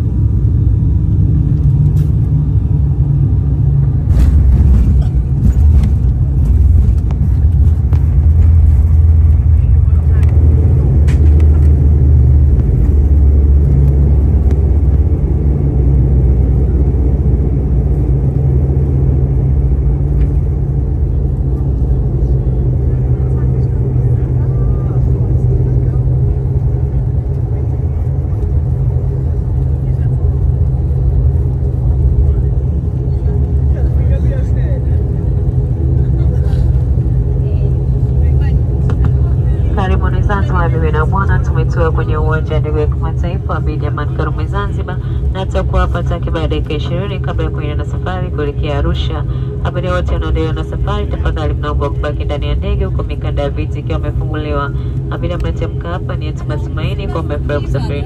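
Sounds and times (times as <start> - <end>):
turboprop engine drone: 0.0 - 58.0.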